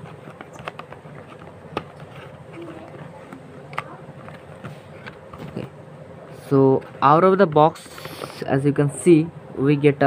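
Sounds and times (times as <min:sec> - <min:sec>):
cardboard rustling: 0:00.0 - 0:05.7.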